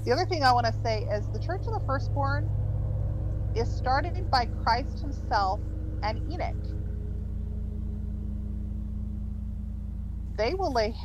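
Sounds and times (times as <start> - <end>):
faint constant hum: 0.0 - 11.0
truck engine droning: 0.0 - 11.0.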